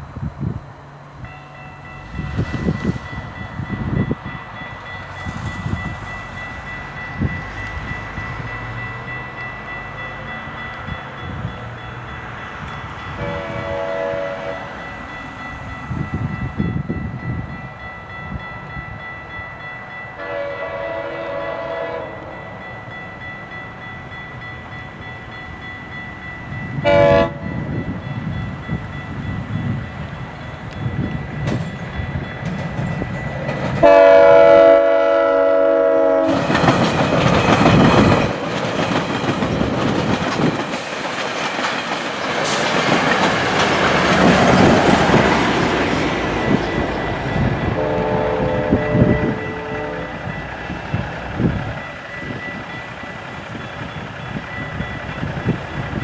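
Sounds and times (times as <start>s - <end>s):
train rumbling past: 0.0s - 56.0s
train horn blasts: 13.2s - 14.8s, 20.2s - 22.5s, 26.8s - 27.6s, 33.8s - 36.6s, 47.7s - 50.4s
wheels clicking over rail joints: 31.4s - 34.8s, 36.2s - 48.1s.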